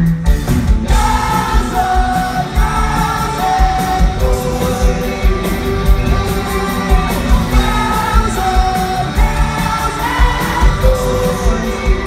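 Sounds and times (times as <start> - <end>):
guitars: 0.0 - 12.0
man singing long notes: 0.9 - 12.0.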